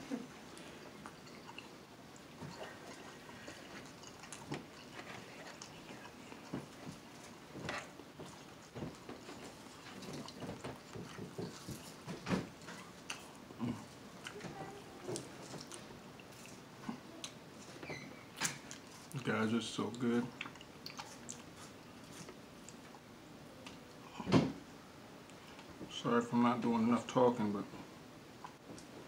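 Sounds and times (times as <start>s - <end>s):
chewing and wet lip smacking: 0.4s - 14.5s, 15.1s - 17.7s, 18.4s - 23.1s.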